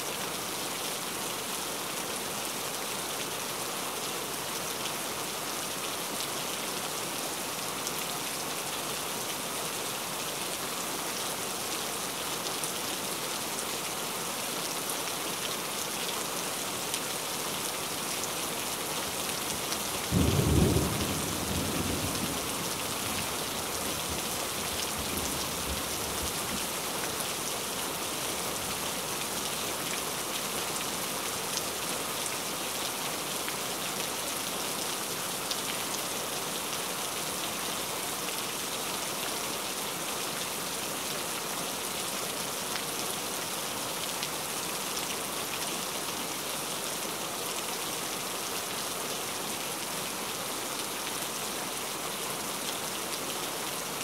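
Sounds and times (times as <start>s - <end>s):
steady rain hiss: 0.0s - 54.0s.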